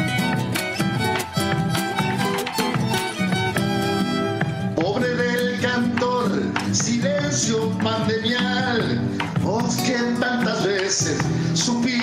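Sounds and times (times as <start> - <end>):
violin: 0.0 - 8.8
guitar: 0.0 - 12.0
man singing: 4.7 - 12.0.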